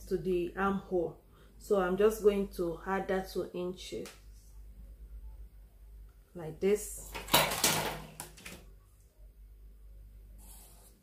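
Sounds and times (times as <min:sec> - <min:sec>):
ruler sliding across paper: 0:10.4 - 0:11.0.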